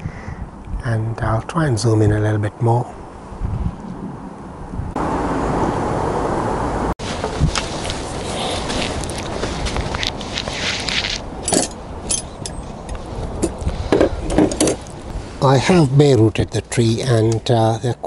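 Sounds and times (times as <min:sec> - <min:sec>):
wind on microphone: 0:00.0 - 0:00.8, 0:02.9 - 0:15.6
outdoor background noise: 0:00.0 - 0:18.0
rustling and scraping of roots: 0:07.0 - 0:16.2.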